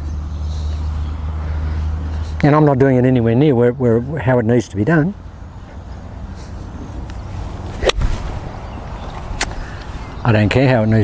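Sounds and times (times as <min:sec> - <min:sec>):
golf ball impact crack: 0:07.0 - 0:09.9
golf club swish: 0:07.1 - 0:09.6.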